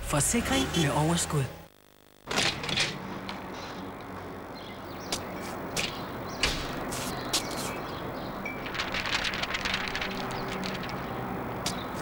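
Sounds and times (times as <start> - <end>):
steady street hiss: 2.3 - 12.0
rapid ticking: 8.5 - 11.1.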